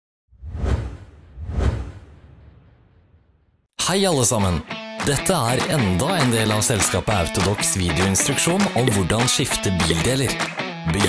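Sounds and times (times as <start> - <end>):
whoosh sound effects: 0.3 - 3.6
deep rumble: 0.4 - 3.5.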